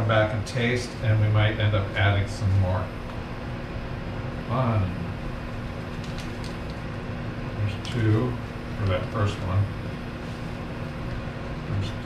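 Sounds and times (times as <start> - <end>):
air conditioner hum: 0.0 - 12.0
sugar ticks and rustles: 5.6 - 6.9, 8.8 - 9.4.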